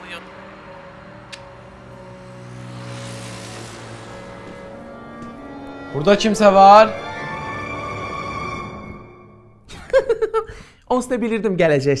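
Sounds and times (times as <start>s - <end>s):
low musical drone: 0.0s - 9.9s
whoosh of noise: 1.9s - 6.9s.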